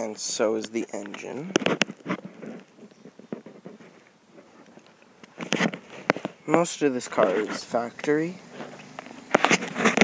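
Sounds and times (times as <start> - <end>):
crackles and rustles on grass: 0.0 - 10.0.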